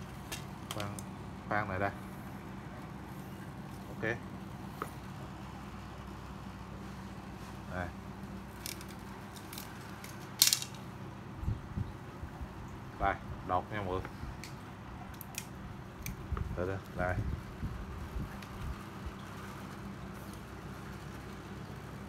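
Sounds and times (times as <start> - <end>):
steady low hum: 0.0 - 22.0
rod clattering on tiled floor: 8.6 - 10.8.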